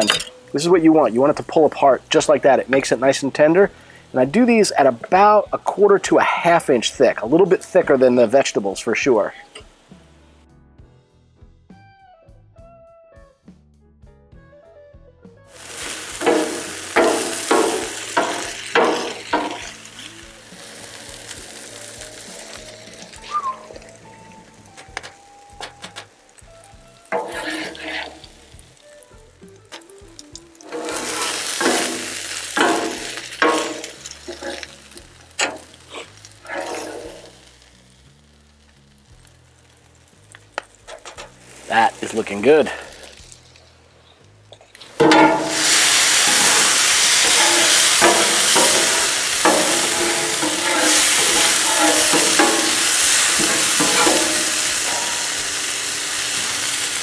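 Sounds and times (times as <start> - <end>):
vegetables sizzling on griddle: 15.5 - 43.6, 44.8 - 57.0
metal spatulas scraping steel: 27.1 - 28.4, 30.6 - 34.7, 35.4 - 37.3, 45.0 - 55.5.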